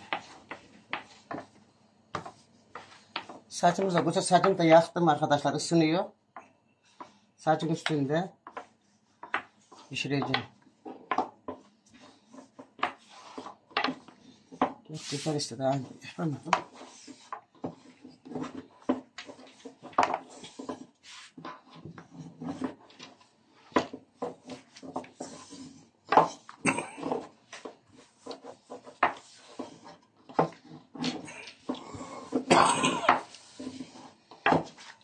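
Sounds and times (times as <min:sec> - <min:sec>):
rolling pin knocking and rubbing: 0:00.0 - 0:04.9, 0:06.3 - 0:35.0.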